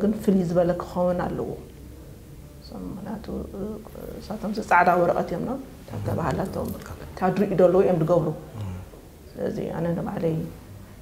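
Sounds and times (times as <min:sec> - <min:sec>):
woman speaking softly: 0:02.6 - 0:08.4.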